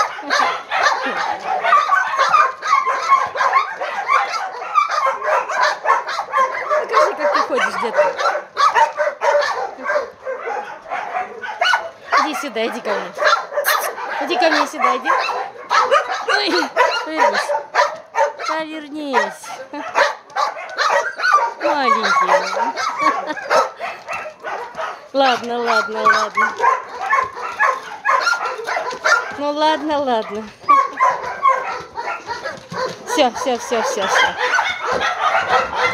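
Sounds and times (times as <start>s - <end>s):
dogs barking and yipping: 0.0s - 35.9s.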